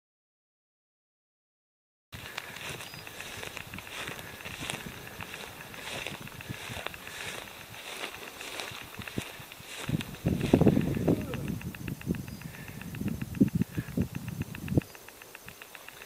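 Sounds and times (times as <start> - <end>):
rustling of dry grass: 2.2 - 16.0
soft footsteps in grass: 2.2 - 16.0.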